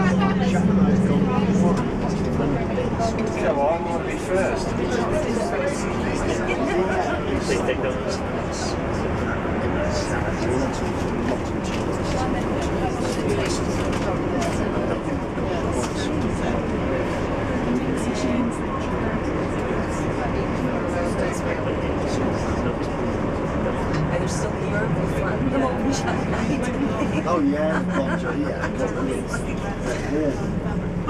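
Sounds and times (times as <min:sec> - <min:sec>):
bus engine and road rumble: 0:00.0 - 0:31.0
indistinct passenger chatter: 0:00.0 - 0:31.0.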